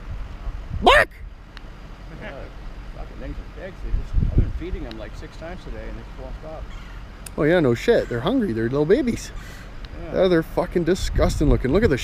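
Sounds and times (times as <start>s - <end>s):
steady low rumble: 0.0s - 7.6s.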